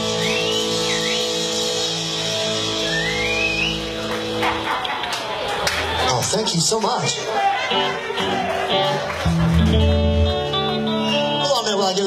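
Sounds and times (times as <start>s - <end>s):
high sliding guitar notes: 0.0s - 4.6s, 7.7s - 11.5s.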